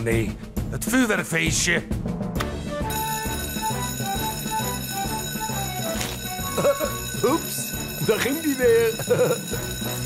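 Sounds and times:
background music: 0:00.0 - 0:10.0
fire alarm bell ringing: 0:02.9 - 0:10.0.

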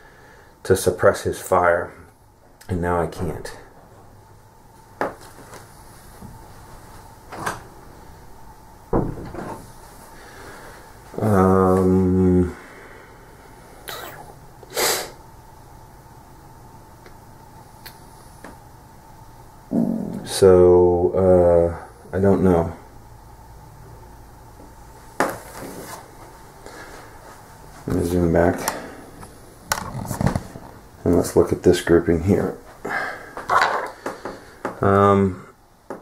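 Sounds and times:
person breathing: 0:00.0 - 0:00.6, 0:10.1 - 0:11.0, 0:12.5 - 0:13.6, 0:26.6 - 0:27.2, 0:32.8 - 0:34.8.

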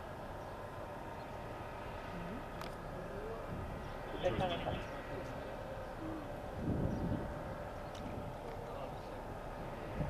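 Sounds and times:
faint constant hum: 0:00.0 - 0:10.0
traffic rumble: 0:00.0 - 0:10.0
faint voices: 0:02.0 - 0:06.6, 0:07.9 - 0:09.8.

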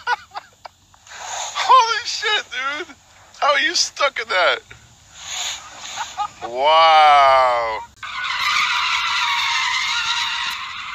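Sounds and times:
tyres squealing on asphalt: 0:00.0 - 0:10.9.

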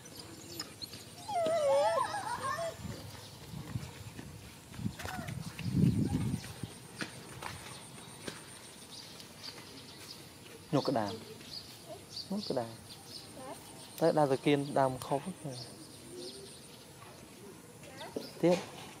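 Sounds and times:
dog whining: 0:00.6 - 0:02.8.

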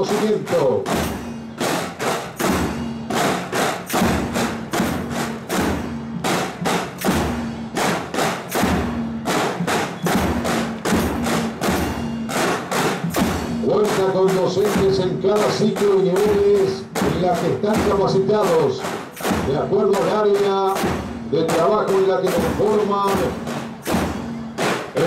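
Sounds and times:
deeper drum beats: 0:00.0 - 0:25.0
rapid snare drum strokes: 0:00.0 - 0:25.0.

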